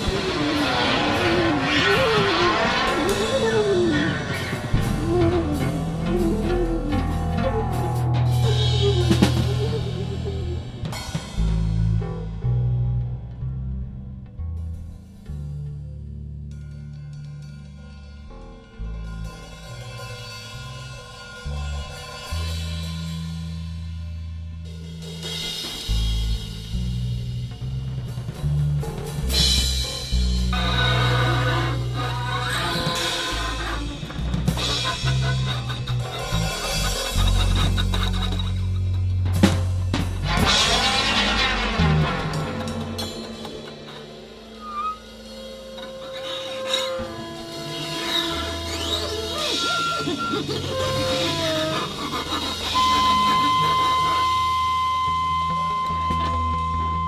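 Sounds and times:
free jazz improvisation: 0.0 - 13.4, 24.9 - 57.0
bass long low notes: 0.0 - 46.2, 46.9 - 57.0.

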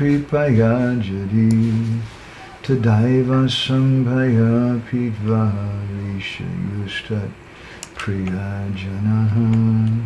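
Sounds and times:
man chanting prayers: 0.0 - 7.4, 8.0 - 10.0.

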